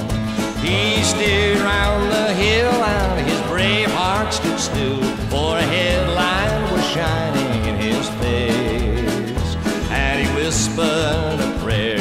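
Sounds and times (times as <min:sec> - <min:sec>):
acoustic guitar: 0:00.0 - 0:12.0
alternating bass rhythm: 0:00.0 - 0:12.0.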